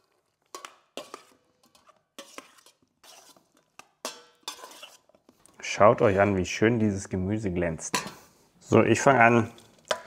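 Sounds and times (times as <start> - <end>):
metal spoon scraping and clinking bowl: 0.0 - 5.3, 9.5 - 10.0.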